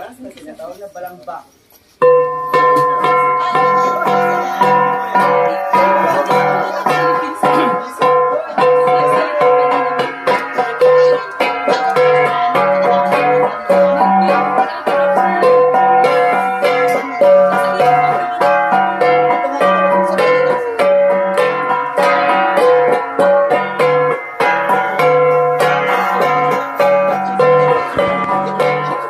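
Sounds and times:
bronze gongs struck in interlocking rhythm: 2.0 - 29.0.

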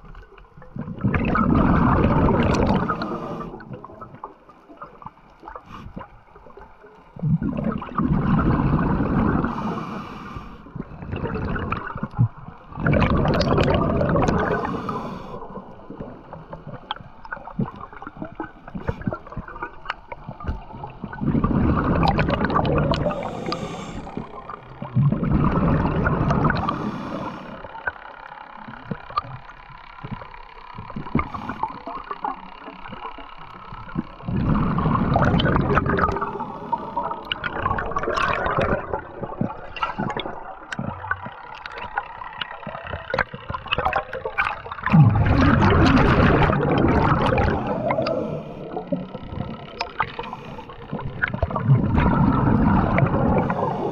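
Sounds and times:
gurgling water: 0.0 - 53.9
bubbling bursts: 0.8 - 4.2, 7.2 - 9.7, 10.8 - 14.8, 16.0 - 26.8, 33.8 - 42.0, 42.6 - 53.9
diver breathing underwater: 1.3 - 3.9, 8.2 - 11.6, 13.6 - 16.1, 21.2 - 27.9, 34.3 - 40.5, 44.9 - 53.9.

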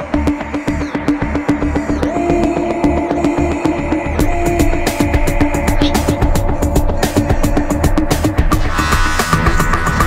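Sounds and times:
electronic grime beat: 5.4 - 10.0.

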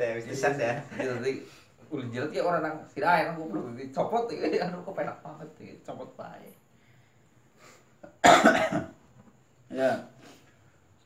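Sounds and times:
man coughing: 8.1 - 9.0.

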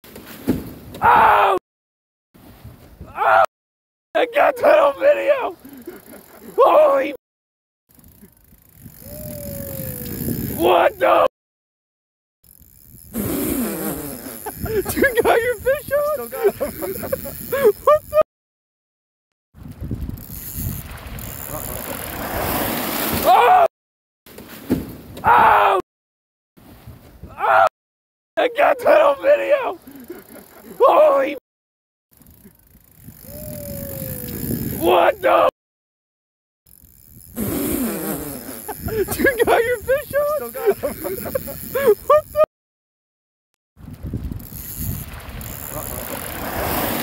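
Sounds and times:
wind rumble on microphone: 8.2 - 10.6, 19.6 - 22.5, 32.2 - 35.0, 38.8 - 42.4, 43.8 - 46.7.

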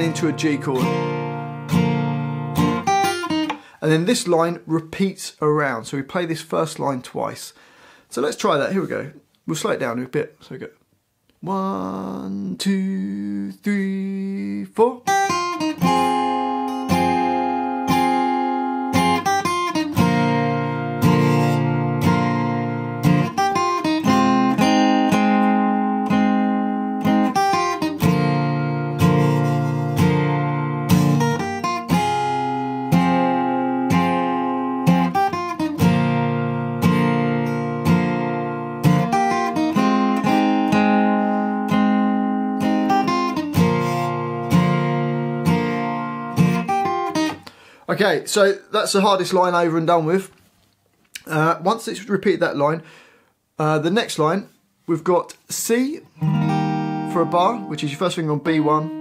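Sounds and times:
acoustic guitar chords: 0.0 - 4.5, 11.4 - 49.4, 56.0 - 59.0.

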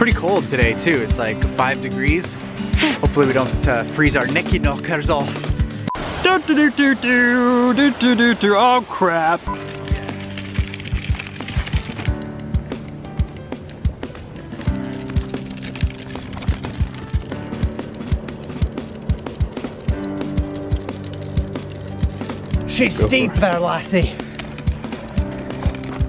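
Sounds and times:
background music with beat and chords: 0.0 - 5.9, 9.5 - 26.0.

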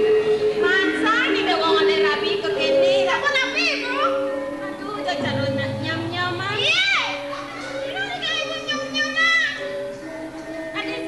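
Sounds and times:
steady held tones: 0.0 - 11.0.

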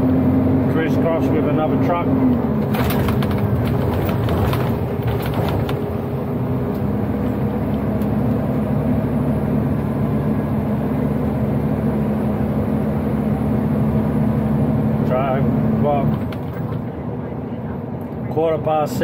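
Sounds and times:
diesel truck engine running: 0.0 - 19.0
tyre and road noise: 0.0 - 19.0.

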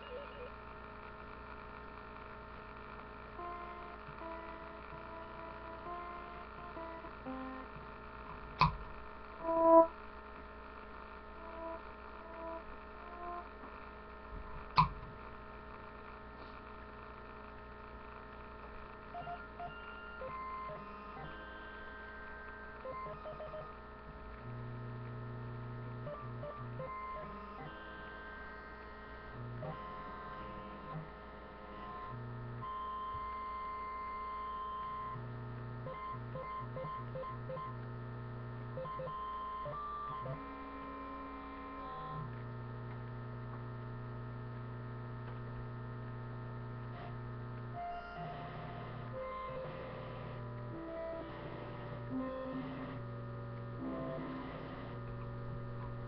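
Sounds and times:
steady electrical hum: 0.0 - 56.0
low buzz: 2.7 - 17.6, 20.9 - 38.8.

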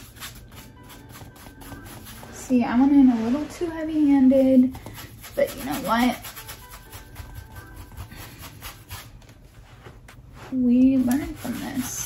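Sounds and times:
paintbrush scrubbing on canvas: 0.0 - 12.0.

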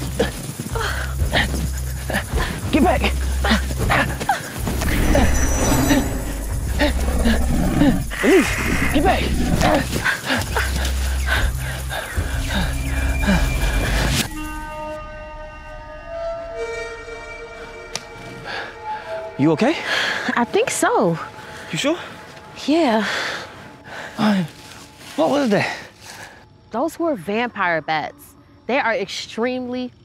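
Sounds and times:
tense film score: 0.0 - 30.0.

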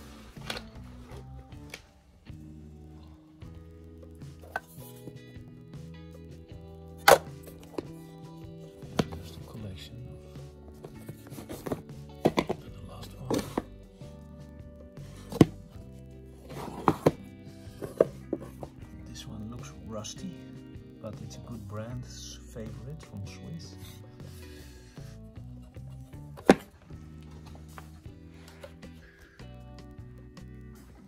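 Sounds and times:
background music: 0.0 - 31.0
wooden cases and tools knocking: 8.8 - 9.6, 10.7 - 13.8, 16.5 - 19.0.

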